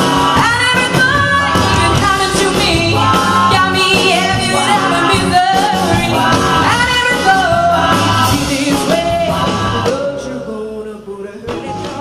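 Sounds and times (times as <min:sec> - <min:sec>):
loud accompanying music: 0:00.0 - 0:12.0
woman singing into microphone: 0:00.0 - 0:12.0.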